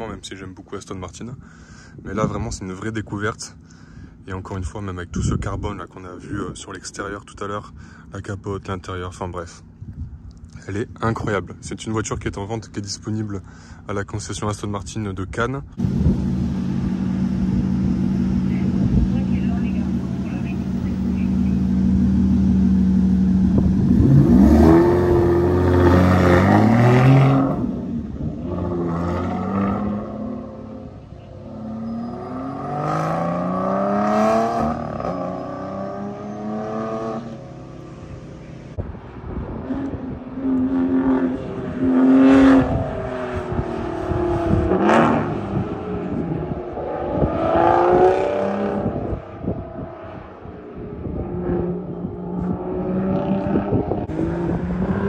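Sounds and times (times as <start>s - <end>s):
sports car engines revving: 15.8s - 55.0s.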